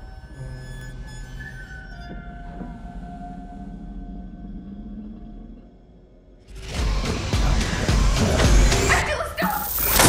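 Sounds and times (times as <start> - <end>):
held drone tones: 0.0 - 8.4.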